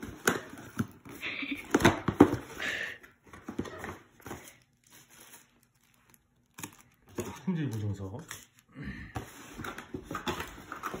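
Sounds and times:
paper rustling and crinkling: 3.3s - 11.0s.

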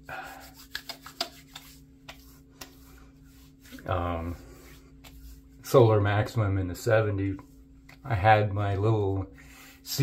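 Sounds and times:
faint steady hum: 0.0s - 10.0s
hands rubbing: 0.2s - 5.8s.

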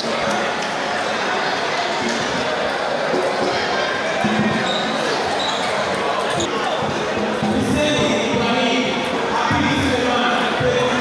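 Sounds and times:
chatter in a hall: 0.0s - 11.0s.

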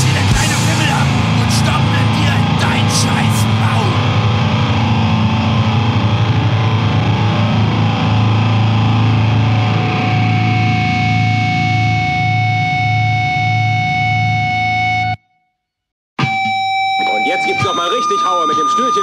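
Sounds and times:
high whine: 0.0s - 15.1s
band with distorted guitar: 0.0s - 15.2s, 16.2s - 19.0s.

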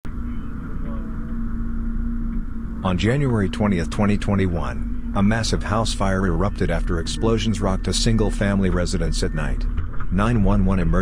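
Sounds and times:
fire engine running: 0.0s - 11.0s.

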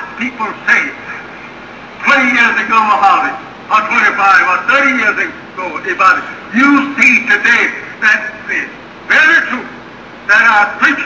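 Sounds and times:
man speaking through tv speakers: 0.0s - 11.0s.

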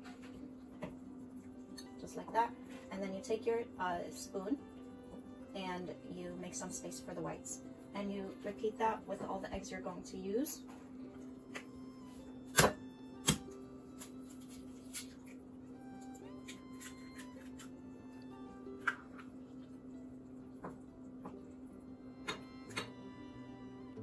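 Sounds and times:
background music: 1.2s - 24.0s.

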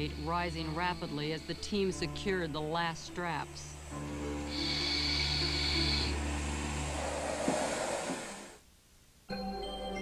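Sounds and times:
rushing hiss of air: 4.4s - 8.6s.

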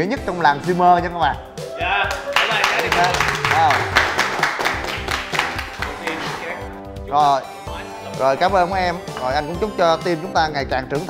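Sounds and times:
background music: 0.0s - 11.0s
group clapping a steady beat: 2.0s - 6.6s.

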